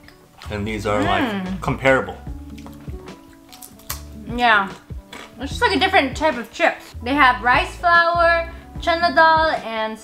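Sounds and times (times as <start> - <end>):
background music: 0.0 - 10.0
person chewing crunchy chips: 2.4 - 4.1.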